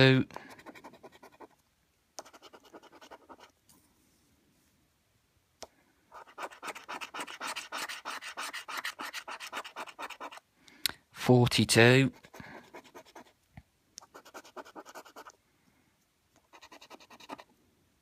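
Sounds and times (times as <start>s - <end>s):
coin scratching a scratchcard: 0.5s - 1.6s, 2.2s - 3.5s, 6.1s - 10.4s, 12.1s - 13.3s, 14.0s - 15.4s, 16.5s - 17.4s.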